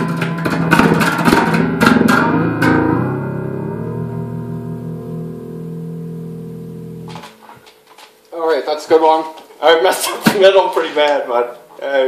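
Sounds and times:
electric bass notes ringing: 0.0s - 7.8s.

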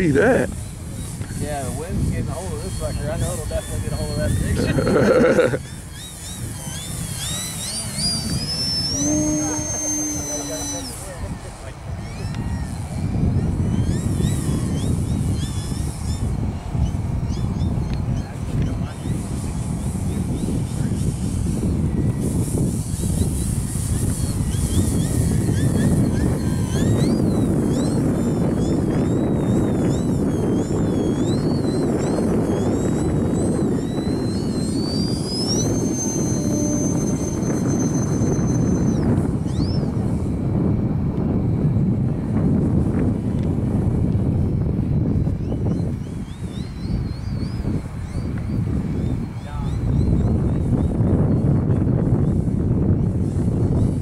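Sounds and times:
model airplane motor whining: 0.0s - 54.0s
wind rumbling on microphone: 0.0s - 54.0s.

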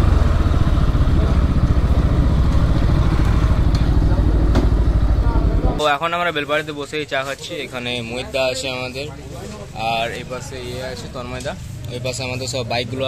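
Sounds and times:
motorcycle engine idling: 0.0s - 5.8s.

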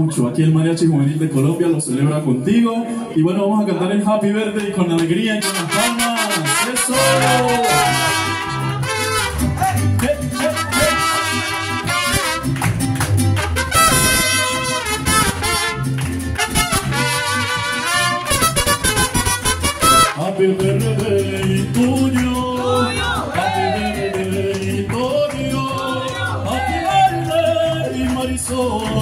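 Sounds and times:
trumpets: 5.4s - 9.7s, 10.3s - 12.8s, 13.4s - 20.2s.

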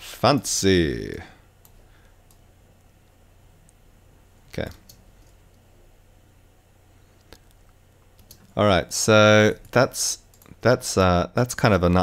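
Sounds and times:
person speaking: 0.0s - 1.5s, 4.4s - 5.1s, 8.3s - 12.0s
low steady hum: 0.0s - 12.0s
computer click: 8.2s - 8.5s.

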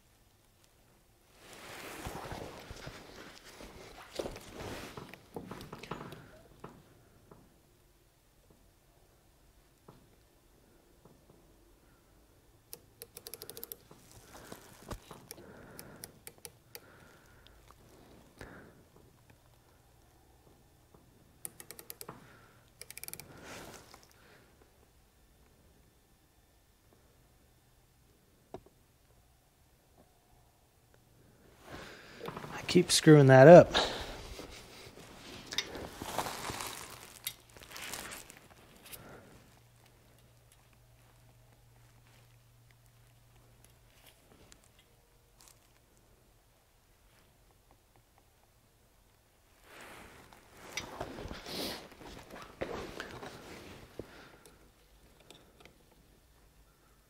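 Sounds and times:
gloved hands rustling towel: 1.3s - 6.3s, 13.9s - 15.8s, 31.6s - 46.0s, 49.5s - 54.6s
small metal clicks of micrometer: 12.7s - 14.2s, 14.9s - 17.6s, 21.4s - 24.2s, 54.4s - 56.0s.

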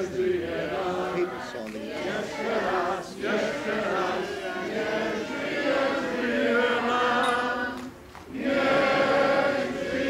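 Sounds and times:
group singing: 0.0s - 10.0s.

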